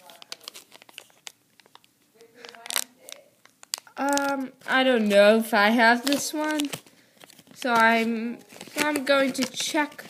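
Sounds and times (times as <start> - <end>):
plastic packaging crinkling and tearing: 0.0 - 10.0.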